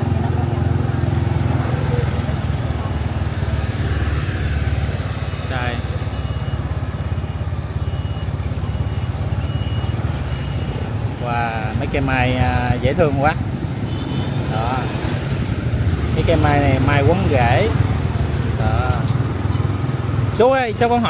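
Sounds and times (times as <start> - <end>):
scooter engine running: 0.0 - 20.4
street traffic: 0.0 - 21.0
voice: 5.5 - 6.0, 11.2 - 13.4, 14.5 - 15.0, 16.2 - 17.8, 18.6 - 19.2, 20.4 - 21.0.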